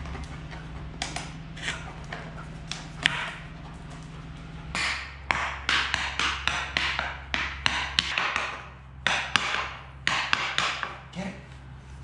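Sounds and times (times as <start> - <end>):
hockey stick tapping ball: 1.0 - 3.5, 4.8 - 11.0
stick scraping on concrete: 1.5 - 3.5.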